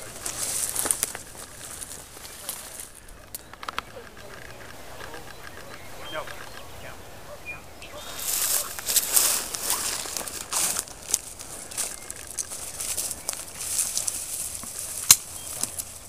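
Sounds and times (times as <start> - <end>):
brush and clothing rustling: 0.0 - 3.2, 7.9 - 16.0.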